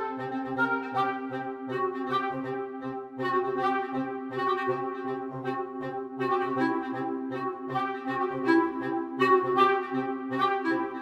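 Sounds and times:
orchestral woodwinds rhythmic pattern: 0.0 - 11.0.

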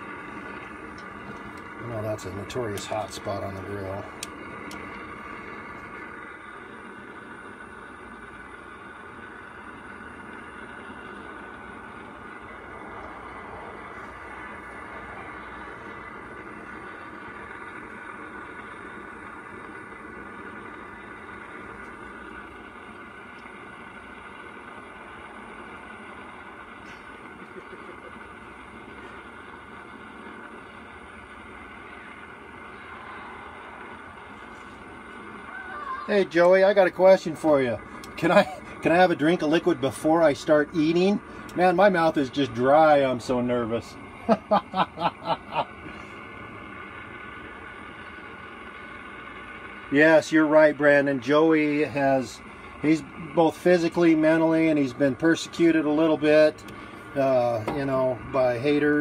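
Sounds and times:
gas grill burner hissing: 0.0 - 59.0
sausage sizzling on grill: 0.0 - 59.0.

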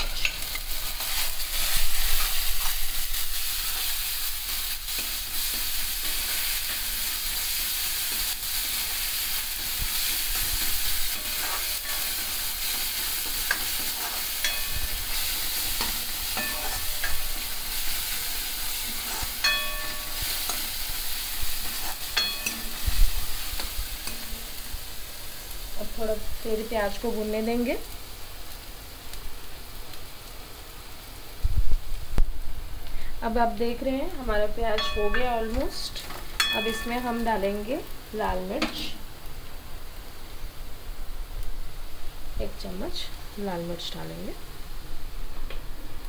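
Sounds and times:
ladle stirring and scraping: 0.0 - 24.4
onions sizzling in hot oil: 0.0 - 46.0.

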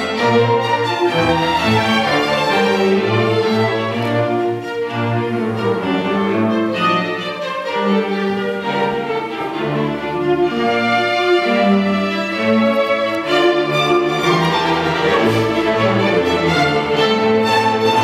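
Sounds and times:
string orchestra playing: 0.0 - 18.0.

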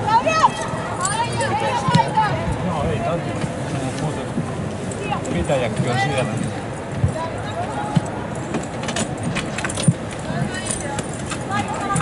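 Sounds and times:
light clicks and rattles: 4.9 - 12.0.

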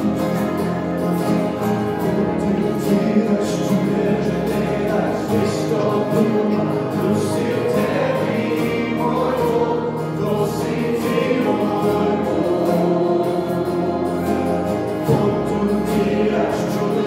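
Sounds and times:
acoustic guitars: 0.0 - 17.0
keyboard: 0.0 - 17.0
voices singing together: 2.0 - 17.0.

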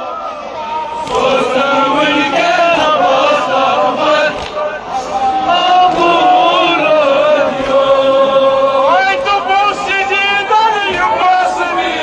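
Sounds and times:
crowd of men chanting: 0.0 - 12.0.

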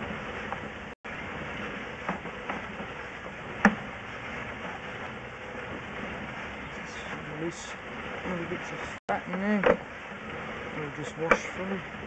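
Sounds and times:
sharp knocks: 3.6 - 3.9.

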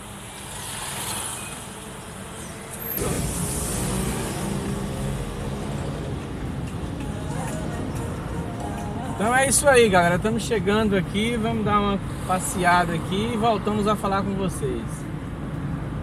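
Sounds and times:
car engine and road noise: 0.0 - 16.0.

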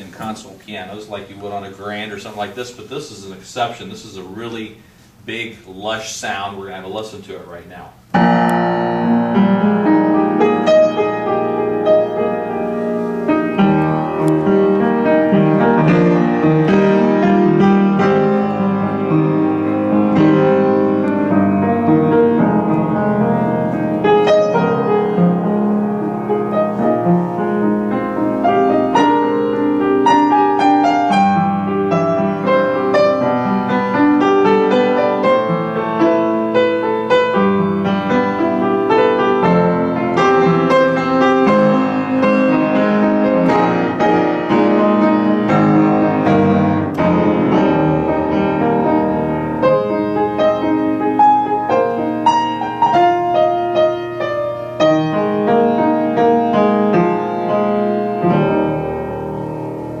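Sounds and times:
piano playing: 5.8 - 60.0.

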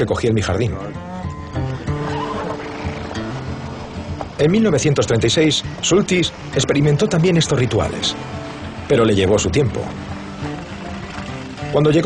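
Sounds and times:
background music low notes: 0.0 - 12.0
horse whinnying: 1.0 - 4.4.

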